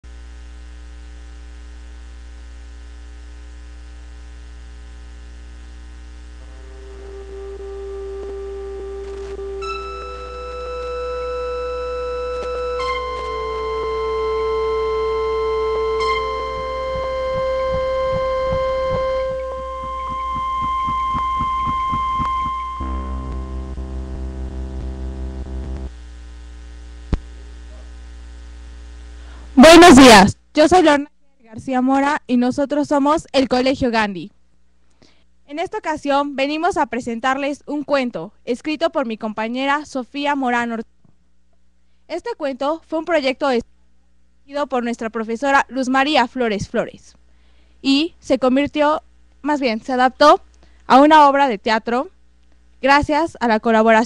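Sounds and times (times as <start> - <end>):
electrical mains hum: 0.0 - 54.0
sustained keyboard notes: 6.4 - 25.9.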